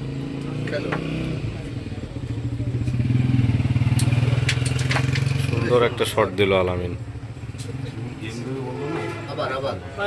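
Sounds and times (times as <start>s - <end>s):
motorcycle engine running: 0.0s - 9.3s.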